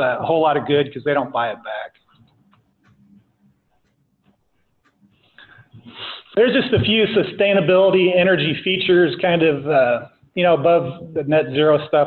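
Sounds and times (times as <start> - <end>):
faint clicks: 1.9 - 5.9
man drawing breath: 5.2 - 6.3.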